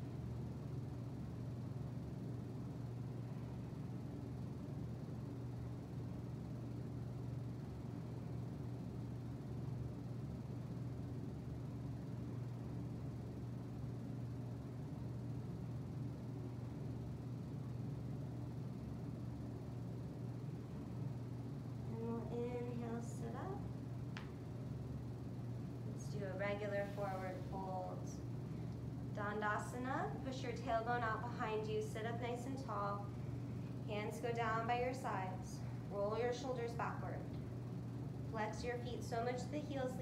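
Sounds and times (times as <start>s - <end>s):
low hum: 0.0s - 40.0s.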